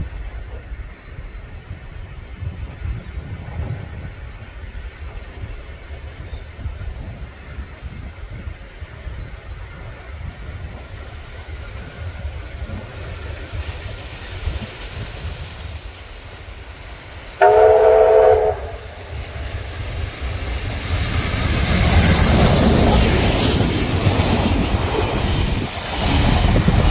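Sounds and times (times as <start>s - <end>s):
steam locomotive rumble: 0.0s - 26.9s
locomotive whistle blast: 17.4s - 19.0s.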